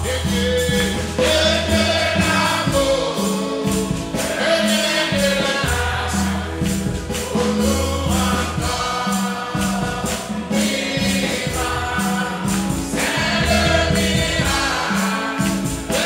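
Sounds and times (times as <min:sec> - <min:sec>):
congregation singing a hymn: 0:00.0 - 0:16.0
instrumental accompaniment: 0:00.0 - 0:16.0
percussion beat: 0:00.0 - 0:16.0
steady bass: 0:00.0 - 0:16.0.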